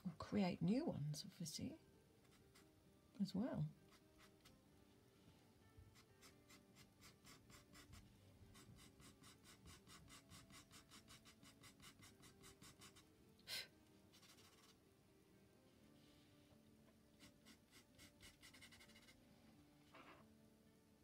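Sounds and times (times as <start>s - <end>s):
pencil scratching on paper: 3.9s - 4.5s, 5.9s - 13.1s, 14.1s - 14.8s, 17.2s - 19.2s.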